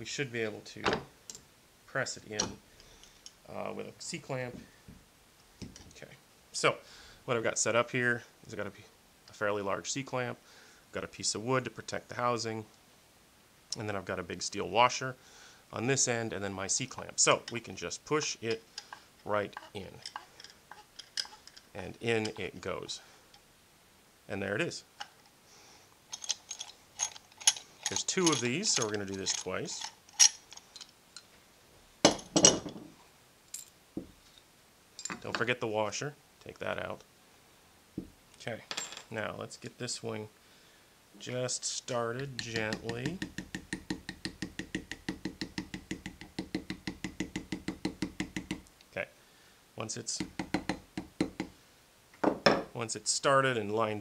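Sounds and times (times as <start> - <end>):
hammer tapping steel ball bearing: 42.2 - 48.7, 50.2 - 51.6.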